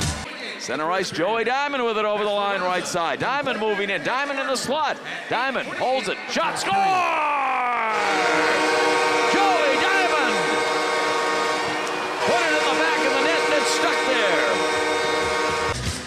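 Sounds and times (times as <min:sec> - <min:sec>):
crowd cheering: 0:00.2 - 0:15.8
goal horn sounding: 0:07.9 - 0:15.8.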